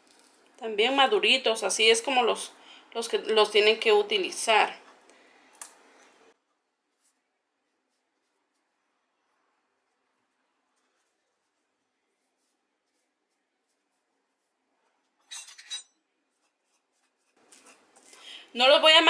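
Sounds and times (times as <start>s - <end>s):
bananas being peeled: 16.2s - 18.4s
fork mashing banana on plate: 16.3s - 18.1s.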